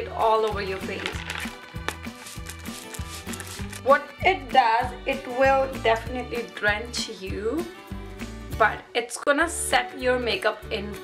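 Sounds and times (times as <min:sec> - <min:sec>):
background music with beat: 0:00.2 - 0:08.7
spray bottle hissing: 0:01.4 - 0:03.8.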